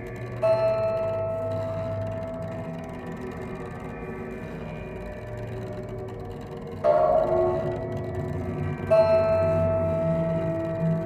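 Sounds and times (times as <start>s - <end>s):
held high cello tone: 0.0s - 11.0s
steady low drone: 0.0s - 11.0s.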